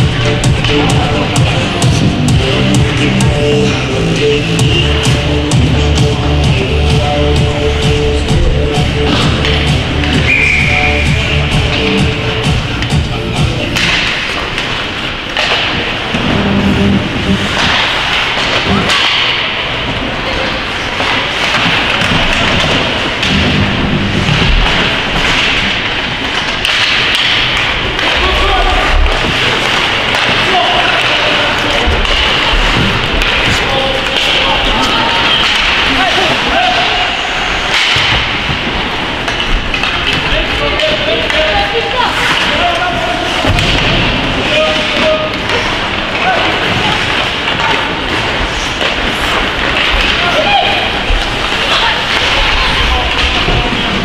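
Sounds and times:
echoing arena noise: 0.0s - 54.0s
hockey sticks and puck knocks: 7.8s - 10.8s, 11.5s - 16.3s, 17.4s - 37.0s, 37.6s - 54.0s
shouts and voices: 33.6s - 37.9s, 50.1s - 53.9s.

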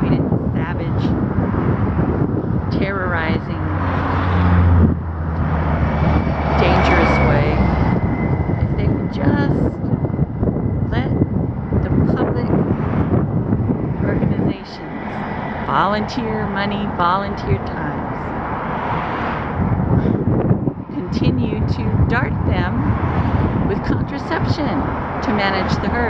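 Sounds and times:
passing highway traffic: 0.0s - 26.0s
vehicle engine hum: 0.0s - 26.0s
wind buffeting microphone: 0.0s - 26.0s.

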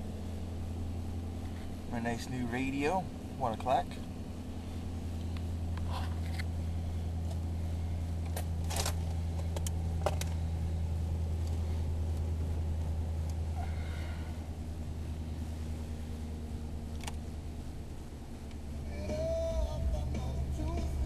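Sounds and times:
car engine humming: 0.0s - 21.0s.

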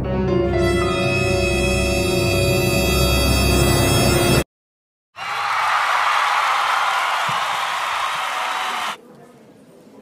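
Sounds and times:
audience applauding: 5.2s - 9.0s.

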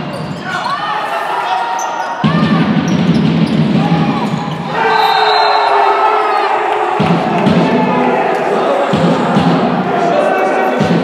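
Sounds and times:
players calling out: 0.0s - 11.0s.

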